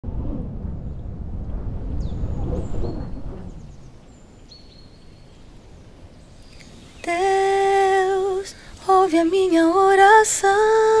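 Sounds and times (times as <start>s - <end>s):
low rumble: 0.0s - 5.0s.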